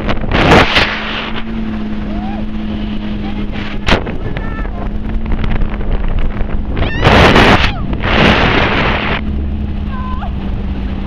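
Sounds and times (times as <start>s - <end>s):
jet ski engine running: 0.0s - 11.0s
wind and water noise: 0.0s - 11.0s.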